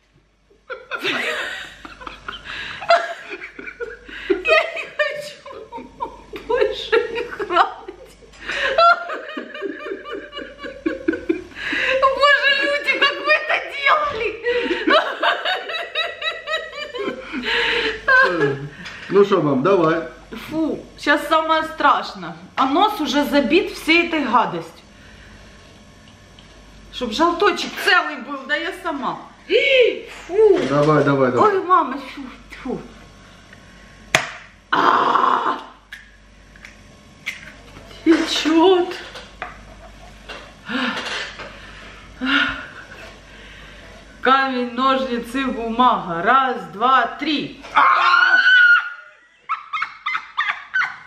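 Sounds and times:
woman and man laughing: 0.6s - 13.3s, 14.4s - 18.7s, 47.8s - 51.0s.

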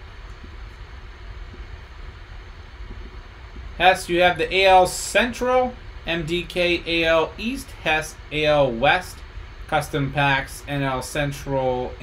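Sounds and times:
room noise hum and hiss: 0.0s - 12.0s.

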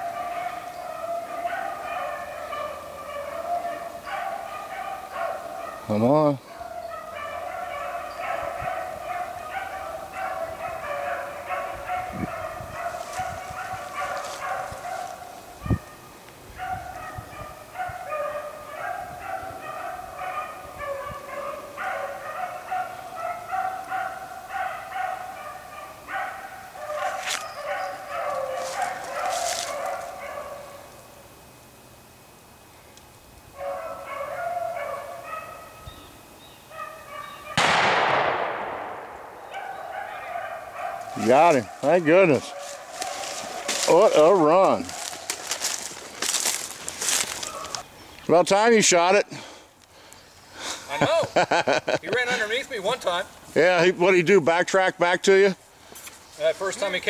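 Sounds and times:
hounds baying: 0.0s - 31.0s, 33.5s - 49.6s, 50.6s - 57.0s
loud gunshot: 37.6s - 39.5s.

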